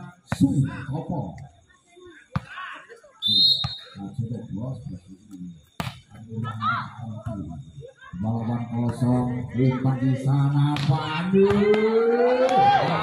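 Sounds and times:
referee's whistle: 3.2s - 4.0s
volleyball being hit: 10.8s - 11.9s.

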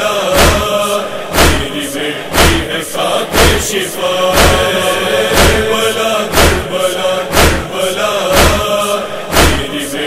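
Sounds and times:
man chanting a lament: 0.0s - 10.0s
heavy thud: 0.4s - 0.6s, 1.3s - 1.7s, 2.3s - 2.7s, 4.3s - 8.7s, 9.3s - 9.7s.

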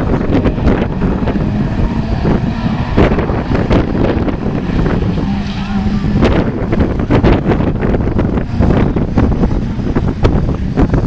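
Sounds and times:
racing car engines revving: 0.0s - 11.0s
wind buffeting microphone: 0.0s - 11.0s.

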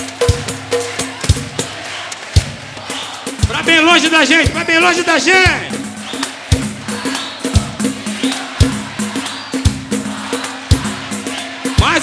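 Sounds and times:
deep drum beats: 0.0s - 12.0s
samba band playing: 0.0s - 12.0s.

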